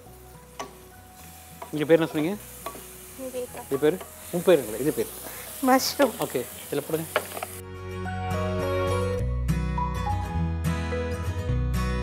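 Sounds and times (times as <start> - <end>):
spices sizzling in a pot: 0.0 - 7.6.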